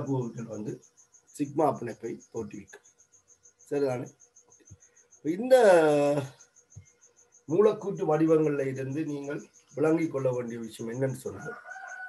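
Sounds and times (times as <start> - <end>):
man lecturing: 0.0 - 0.8, 1.4 - 2.7, 3.7 - 4.1, 5.3 - 6.3, 7.5 - 11.5
cricket chirping: 0.0 - 12.0.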